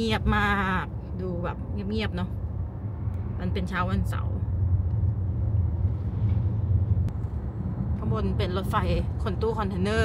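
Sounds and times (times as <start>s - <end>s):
car interior low rumble: 0.0s - 10.0s.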